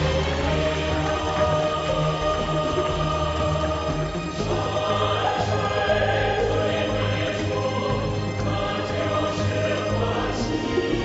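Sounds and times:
choir singing sustained notes: 0:00.0 - 0:11.0.

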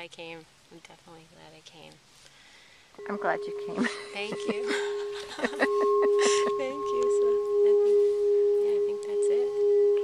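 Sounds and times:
steady ringing tone: 0:03.0 - 0:10.0.

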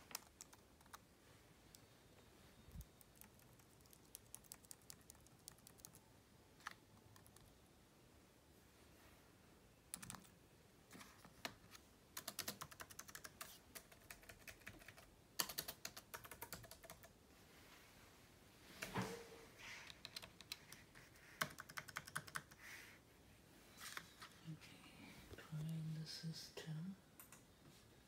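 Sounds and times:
keyboard keys clicking: 0:00.0 - 0:01.0, 0:02.8 - 0:06.0, 0:09.9 - 0:10.3, 0:12.2 - 0:17.1, 0:19.9 - 0:22.6.

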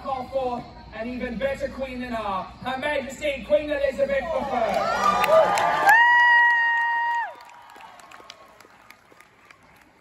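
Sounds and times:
crowd noise: 0:00.0 - 0:10.0
scattered applause: 0:04.6 - 0:10.0.

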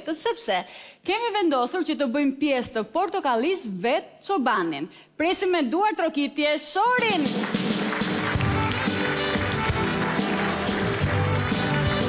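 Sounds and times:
live band with violins: 0:08.0 - 0:12.0.

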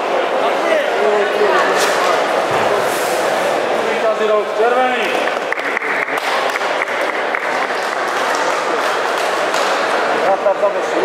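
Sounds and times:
audience applauding: 0:05.4 - 0:09.9.

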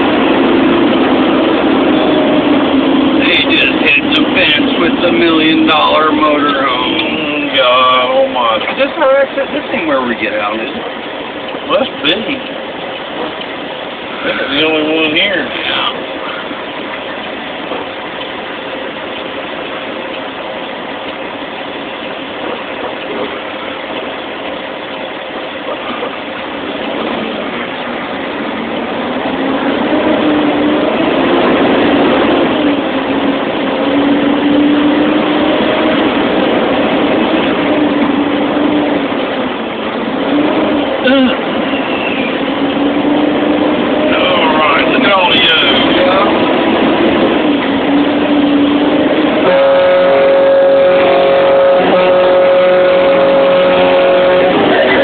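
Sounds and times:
truck diesel engine running: 0:00.0 - 0:55.0.

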